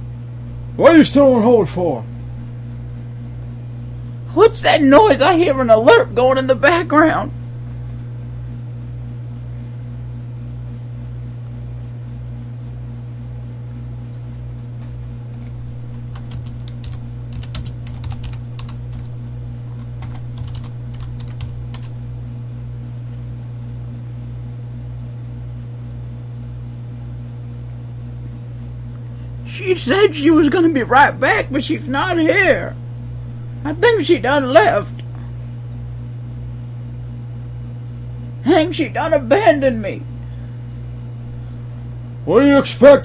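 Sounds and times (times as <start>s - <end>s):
low hum: 0.0s - 23.8s
faint regular pulsing: 14.9s - 22.1s
keyboard typing clicks: 15.4s - 21.9s.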